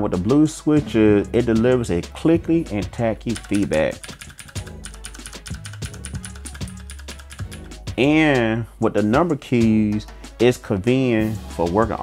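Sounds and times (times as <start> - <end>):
background music: 0.0 - 12.0
mechanical keyboard clicking: 3.3 - 7.8.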